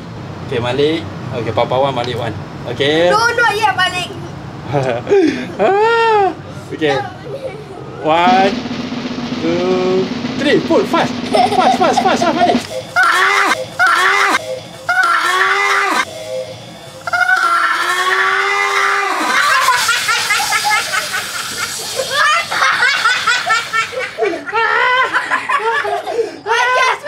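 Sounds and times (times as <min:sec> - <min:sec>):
children screaming and laughing: 0:04.7 - 0:08.3, 0:11.3 - 0:16.1, 0:17.0 - 0:27.0.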